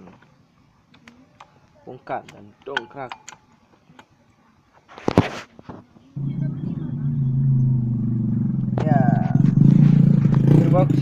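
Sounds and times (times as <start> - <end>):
motorcycle engine idling: 6.2 - 11.0.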